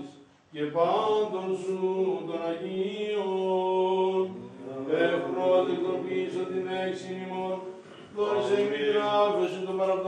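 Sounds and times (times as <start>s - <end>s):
chant with long held notes: 0.0s - 10.0s.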